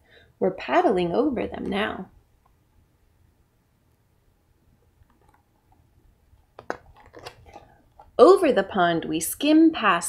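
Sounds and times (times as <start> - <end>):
book page turning: 6.5 - 8.1.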